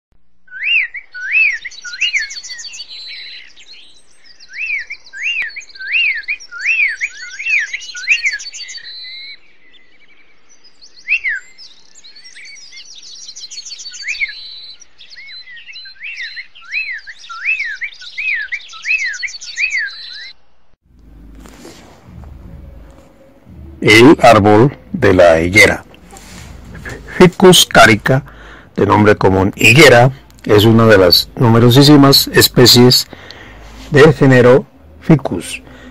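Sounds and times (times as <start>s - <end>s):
songbird singing: 0.2s - 35.9s
low hum: 20.9s - 35.9s.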